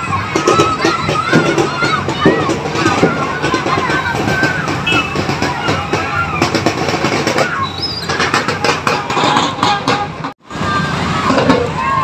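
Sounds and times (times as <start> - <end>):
marching band drums: 0.0 - 11.9
crowd voices calling out: 0.0 - 12.0.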